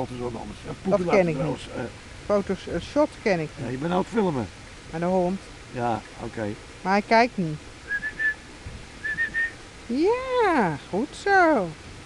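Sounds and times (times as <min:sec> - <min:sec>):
person whistling short notes: 0:07.9 - 0:08.4, 0:09.0 - 0:09.6.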